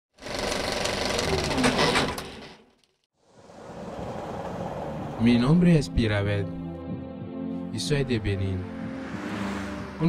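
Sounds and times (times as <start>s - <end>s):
fast loud mechanical rattle: 0.1s - 2.6s.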